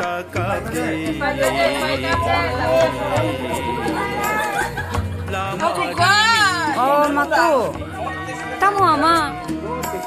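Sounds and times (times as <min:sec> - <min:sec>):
background music: 0:00.0 - 0:10.0
voices talking: 0:00.6 - 0:10.0.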